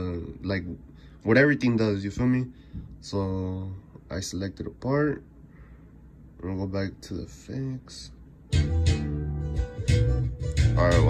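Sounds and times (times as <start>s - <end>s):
slap bass playing: 8.5s - 11.0s.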